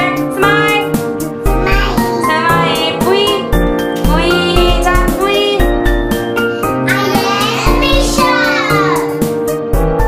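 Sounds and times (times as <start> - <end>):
upbeat music with steady beat: 0.0 - 10.0.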